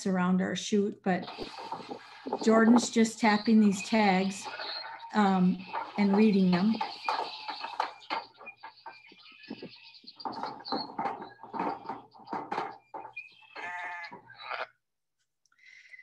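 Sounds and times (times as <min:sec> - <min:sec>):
knocks and rattles of metal panels: 0:01.2 - 0:14.3
sheep bleating: 0:04.4 - 0:05.1, 0:13.5 - 0:14.8.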